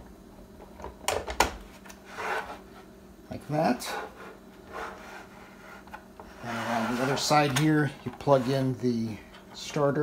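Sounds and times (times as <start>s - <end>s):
plastic scraping on plastic: 4.0s - 8.8s.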